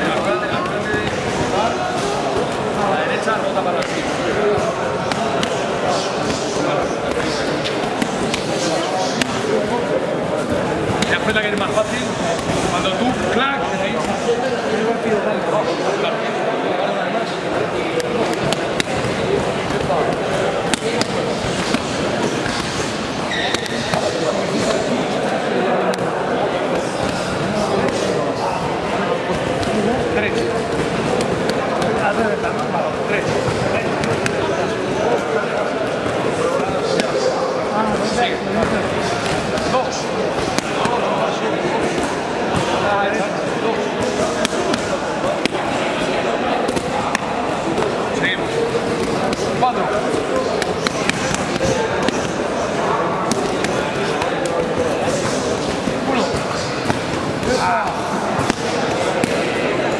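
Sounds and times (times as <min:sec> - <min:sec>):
voices echoing in a hall: 0:00.0 - 0:59.9
boxing gloves striking pads: 0:48.7 - 0:59.4.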